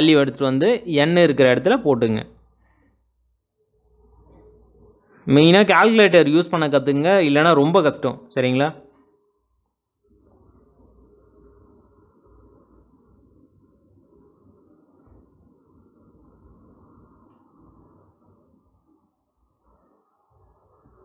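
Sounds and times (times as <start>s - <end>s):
crickets chirping: 0.0s - 21.0s
low background noise: 0.0s - 21.0s.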